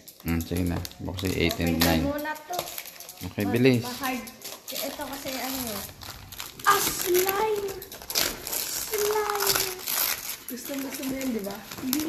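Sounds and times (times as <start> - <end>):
wrapping paper crinkling and tearing: 0.0 - 12.0
child's voice: 1.8 - 2.8, 3.9 - 5.9, 6.6 - 7.9, 8.7 - 12.0.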